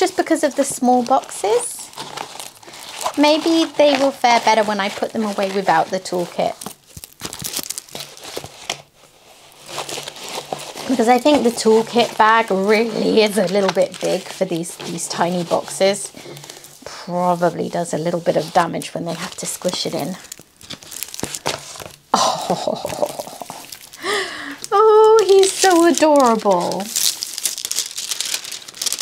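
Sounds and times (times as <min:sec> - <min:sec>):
canvas and paper rustling: 0:00.0 - 0:29.0
plastic film crinkling: 0:00.0 - 0:29.0.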